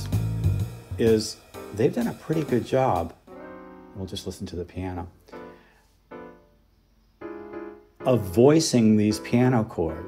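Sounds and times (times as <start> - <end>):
piano jazz chords: 0.0 - 10.0.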